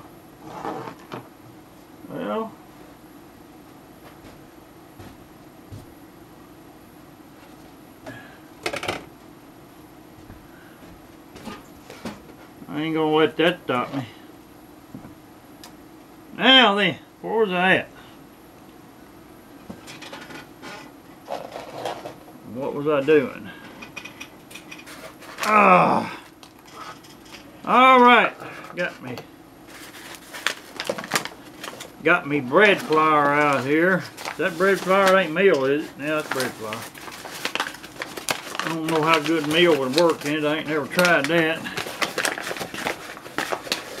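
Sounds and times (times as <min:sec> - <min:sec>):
low room hum: 0:00.0 - 0:44.0
paper bag crinkling: 0:29.6 - 0:44.0.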